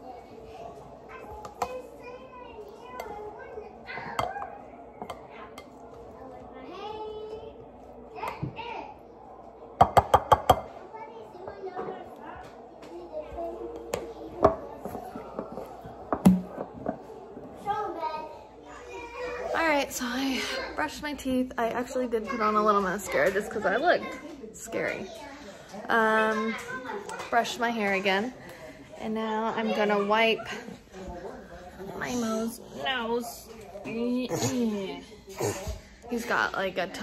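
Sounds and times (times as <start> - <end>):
children calling and chattering: 0.0 - 37.0.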